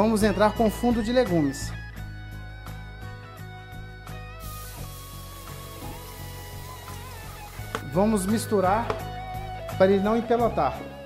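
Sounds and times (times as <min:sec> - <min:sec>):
instrumental music: 0:00.0 - 0:11.0
faint hiss: 0:04.4 - 0:07.9.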